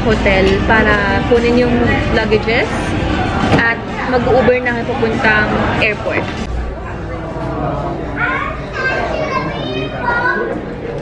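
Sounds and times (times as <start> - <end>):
diners chattering: 0.0 - 11.0.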